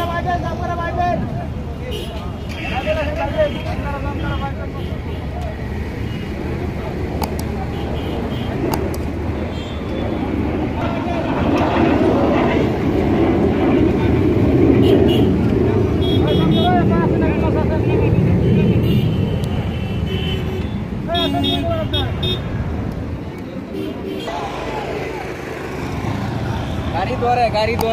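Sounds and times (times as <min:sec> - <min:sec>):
people talking: 0:00.0 - 0:12.7, 0:13.5 - 0:18.8, 0:21.1 - 0:22.4, 0:23.2 - 0:27.9
vehicle engines running: 0:00.0 - 0:27.9.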